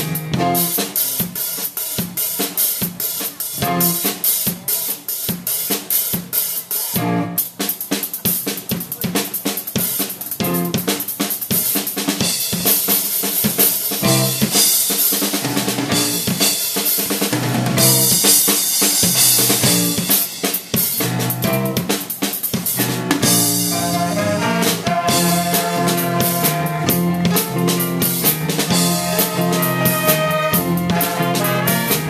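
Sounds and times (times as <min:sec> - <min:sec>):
electric bass: 0:00.0 - 0:01.0, 0:03.6 - 0:04.1, 0:07.0 - 0:07.4, 0:10.4 - 0:10.9, 0:14.0 - 0:14.6, 0:15.4 - 0:16.5, 0:17.2 - 0:18.4, 0:19.1 - 0:20.1, 0:21.0 - 0:22.0, 0:22.7 - 0:32.0
drum kit groove: 0:00.0 - 0:32.0
live funk band: 0:00.0 - 0:32.0.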